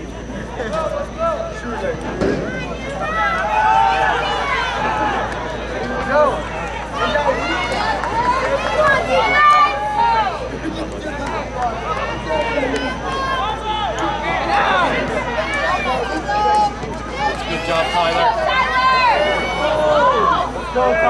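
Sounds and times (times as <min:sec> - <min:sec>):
people shouting outdoors: 0:00.0 - 0:21.0.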